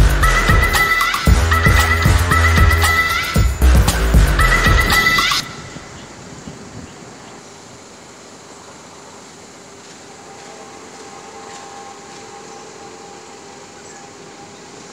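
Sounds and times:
faint steady whine: 0.0s - 14.9s.

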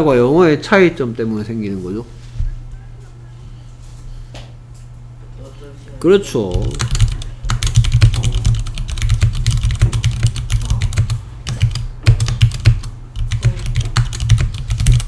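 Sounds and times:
typing on computer keyboard: 6.5s - 15.0s.

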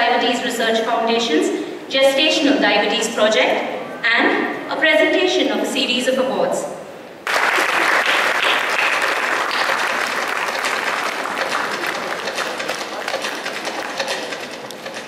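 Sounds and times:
audience applauding: 7.2s - 14.8s.

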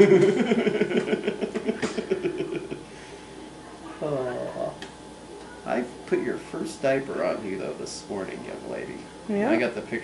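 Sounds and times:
adults laughing: 0.0s - 2.9s.

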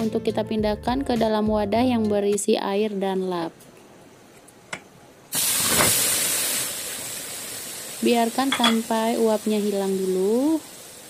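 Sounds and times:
wet cloth hissing with steam: 5.3s - 11.0s.

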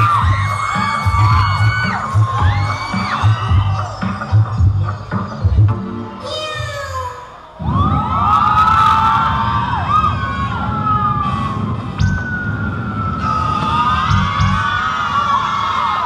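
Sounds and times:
audience screaming and cheering: 0.0s - 6.4s, 7.3s - 16.0s.

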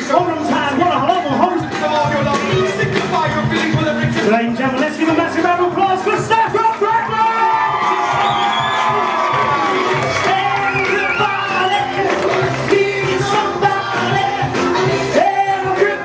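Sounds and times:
loud dance music: 0.0s - 16.0s
crowd cheering: 5.8s - 16.0s.

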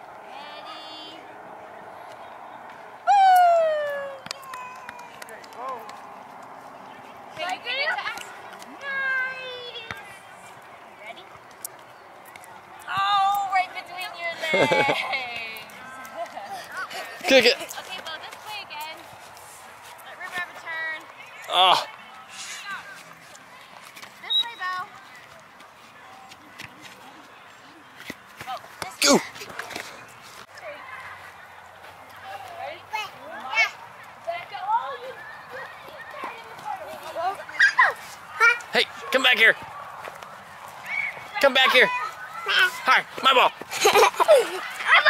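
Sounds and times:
outdoor background noise: 0.0s - 45.0s
steady background noise: 0.0s - 45.0s
children squealing and calling out: 37.5s - 38.7s.

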